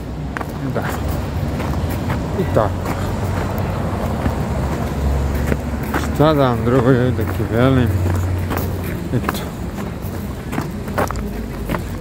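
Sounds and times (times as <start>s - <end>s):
low city rumble: 0.0s - 12.0s
man speaking: 0.5s - 1.3s, 2.1s - 3.9s, 5.9s - 8.4s, 9.0s - 12.0s.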